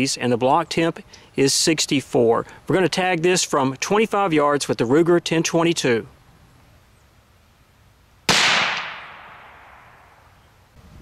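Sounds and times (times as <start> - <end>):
rifle shot with echo: 8.3 - 10.2.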